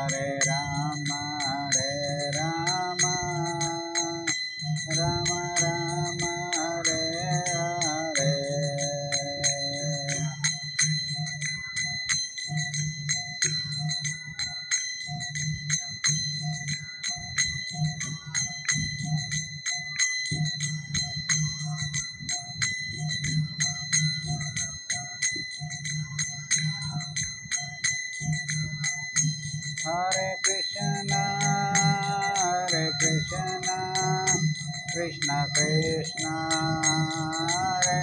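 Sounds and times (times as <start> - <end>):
hand cymbals ringing: 0.0 - 38.0
low pulsing beat: 25.3 - 38.0.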